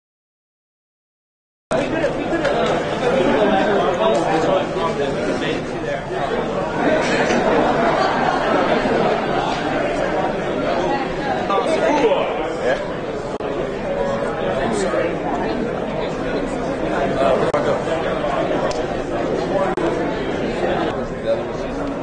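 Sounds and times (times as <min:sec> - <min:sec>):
crowd chatter in a large hall: 0:01.7 - 0:22.0.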